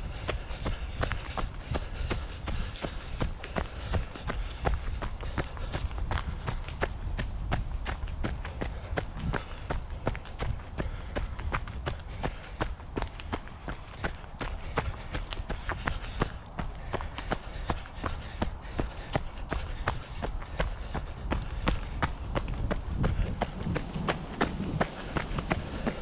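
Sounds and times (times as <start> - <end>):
footsteps on leafy dirt trail: 0.0 - 26.0.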